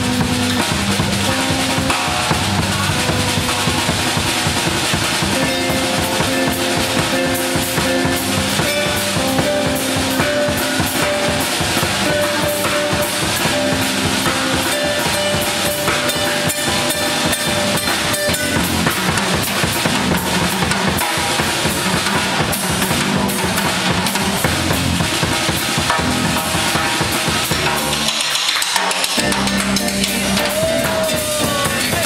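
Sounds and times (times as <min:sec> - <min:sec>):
guitars playing melody: 0:00.0 - 0:28.4, 0:29.0 - 0:32.0
steady drum beat: 0:00.0 - 0:32.0.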